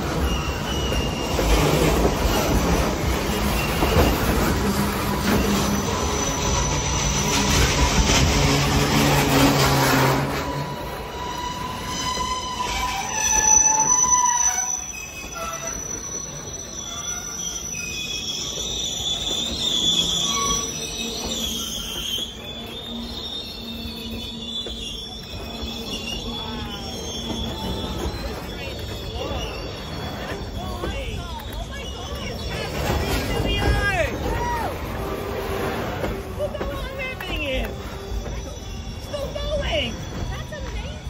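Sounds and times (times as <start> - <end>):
high-pitched wheel squeals: 0.0 - 41.0
train wheels rumbling on rails: 0.0 - 41.0.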